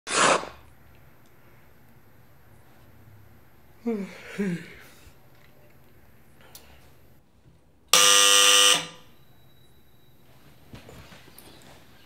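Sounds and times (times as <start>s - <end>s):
electric door buzzer: 8.0s - 9.0s.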